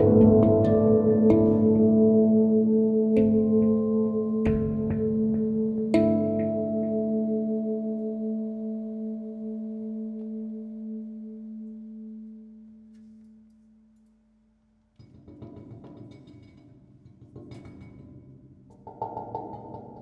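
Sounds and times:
handpan notes ringing: 0.0s - 12.6s.

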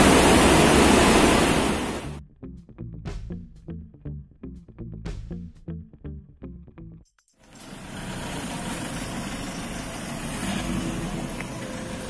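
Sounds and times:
diesel engine idling: 7.5s - 12.0s.

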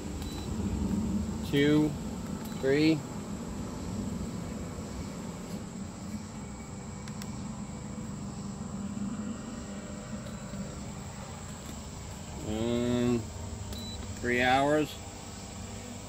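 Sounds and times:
high constant whine: 0.0s - 16.0s
low mechanical hum: 0.0s - 16.0s.

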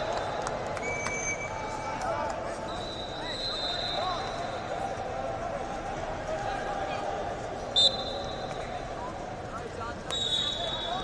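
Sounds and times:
crowd chatter in a hall: 0.0s - 11.0s
referee whistle blasts: 2.7s - 4.6s, 7.8s - 8.6s, 10.1s - 11.0s.

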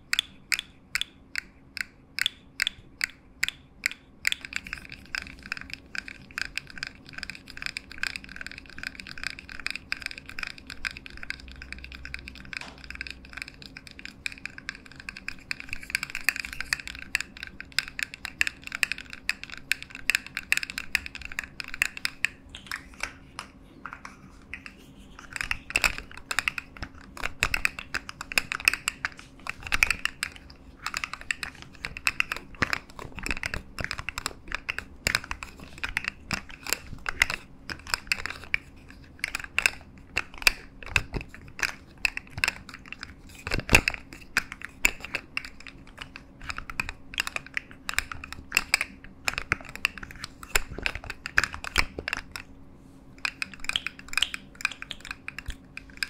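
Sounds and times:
plastic toy clicking and clacking: 0.0s - 52.5s, 53.2s - 56.0s.

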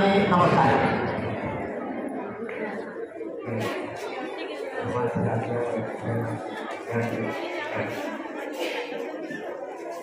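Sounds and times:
indistinct voices chattering: 0.0s - 10.0s.

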